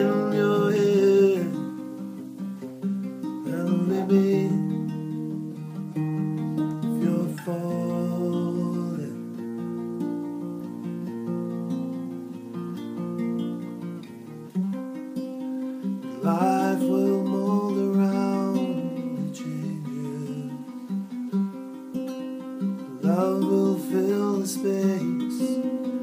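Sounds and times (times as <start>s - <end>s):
acoustic guitar playing chords: 0.0s - 26.0s.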